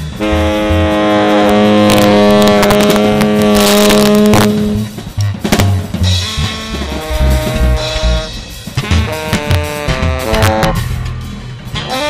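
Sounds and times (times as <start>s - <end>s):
drum and cymbal hits: 0.0s - 12.0s
tenor saxophone long low note: 0.2s - 5.0s, 6.1s - 10.8s.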